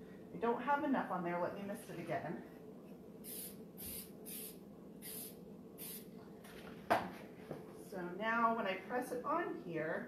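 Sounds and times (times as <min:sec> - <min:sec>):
aerosol spray hiss: 0:03.2 - 0:06.1.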